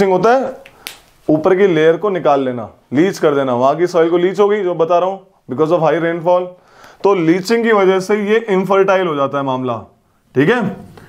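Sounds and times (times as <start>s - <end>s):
man speaking: 0.0s - 11.0s.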